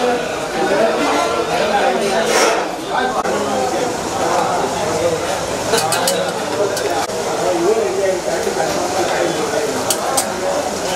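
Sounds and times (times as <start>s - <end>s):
crowd talking in a hall: 0.0s - 10.9s
serving utensils clinking: 4.2s - 7.2s, 8.4s - 10.9s.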